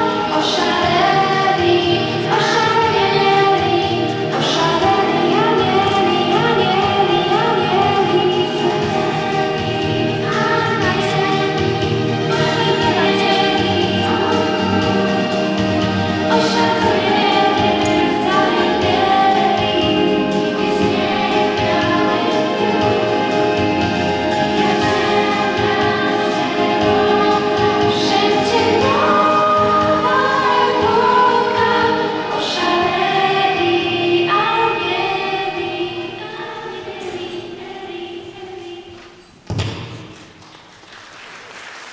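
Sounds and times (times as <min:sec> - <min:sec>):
girl singing a carol: 0:00.0 - 0:15.4, 0:16.3 - 0:23.1, 0:24.5 - 0:39.2
musical accompaniment: 0:00.0 - 0:40.4.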